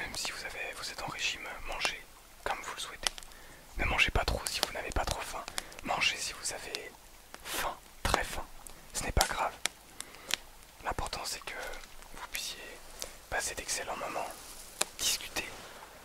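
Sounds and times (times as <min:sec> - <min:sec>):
man whispering: 0:00.0 - 0:09.7, 0:10.8 - 0:15.8.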